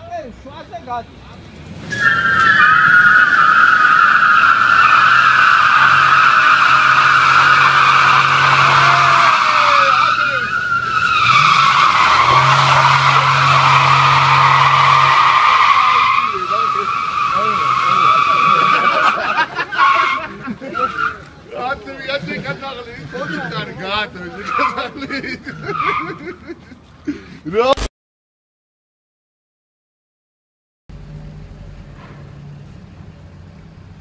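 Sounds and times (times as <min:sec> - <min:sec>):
engine running under load: 0:01.2 - 0:20.8, 0:30.9 - 0:34.0
tyres squealing: 0:01.4 - 0:26.8.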